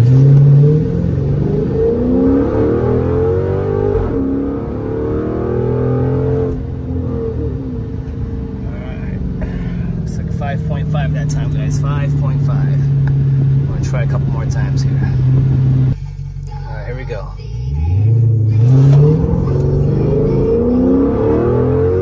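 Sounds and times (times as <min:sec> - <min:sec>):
car engine accelerating hard: 0:00.0 - 0:16.0, 0:17.6 - 0:22.0.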